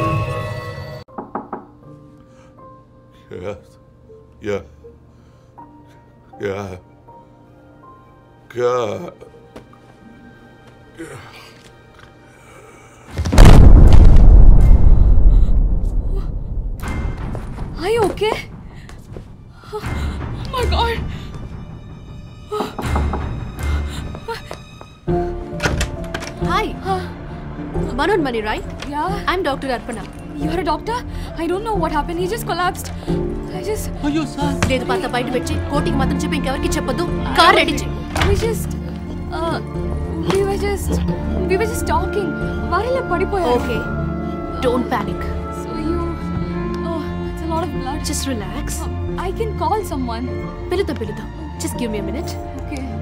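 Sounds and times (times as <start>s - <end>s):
faint soft music: 1.7s - 13.1s, 17.8s - 53.0s
wooden door thunk: 25.5s - 26.5s, 38.1s - 38.6s.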